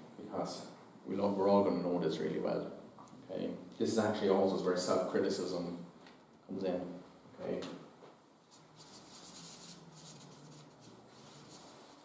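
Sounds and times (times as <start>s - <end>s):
marker writing on paper: 8.5s - 12.0s.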